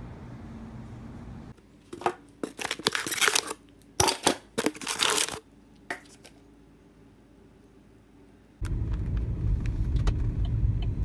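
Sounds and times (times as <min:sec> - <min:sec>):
plastic packaging crinkling: 0:02.4 - 0:05.4.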